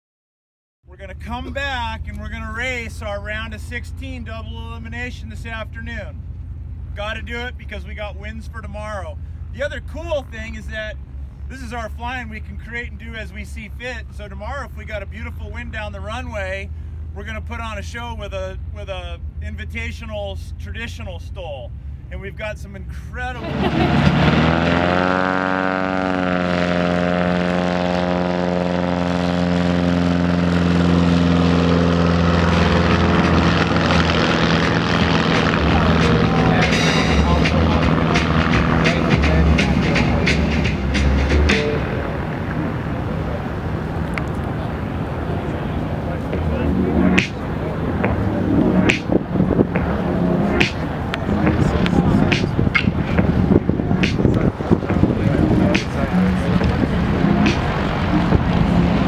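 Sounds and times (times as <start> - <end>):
propeller airplane passing: 21.7 - 59.0.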